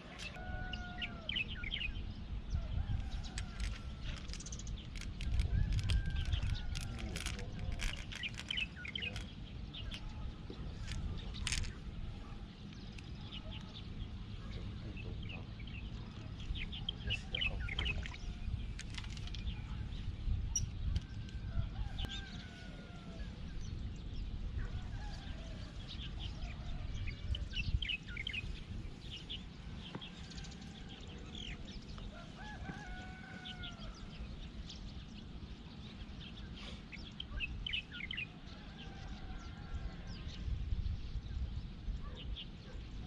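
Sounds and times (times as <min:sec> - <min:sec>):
small birds chirping: 0:00.1 - 0:43.0.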